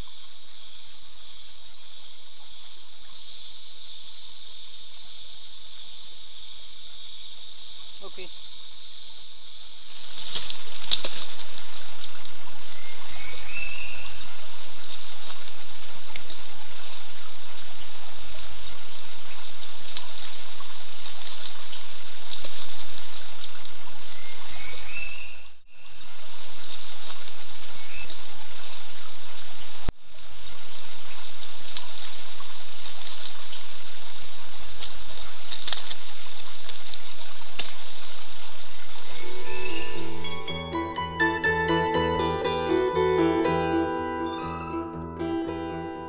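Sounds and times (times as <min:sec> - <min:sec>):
faint high tones: 0:39.1 - 0:46.0
plucked string music: 0:39.2 - 0:46.0.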